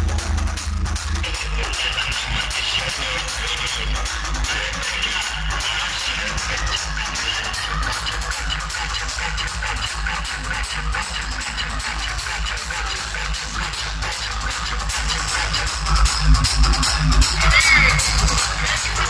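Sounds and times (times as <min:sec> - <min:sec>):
electronic dance music: 0:00.0 - 0:19.0.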